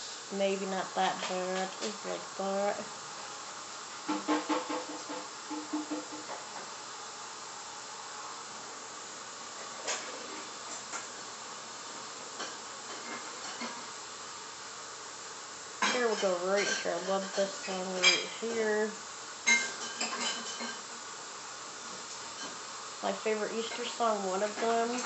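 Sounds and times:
room noise hiss: 0.0s - 25.0s.

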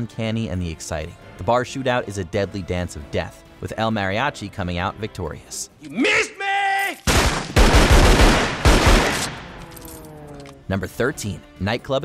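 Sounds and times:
handgun shots: 7.1s - 10.0s.

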